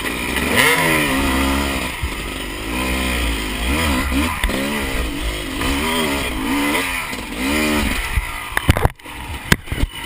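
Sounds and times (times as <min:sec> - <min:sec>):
motorcycle engine revving: 0:00.0 - 0:10.0.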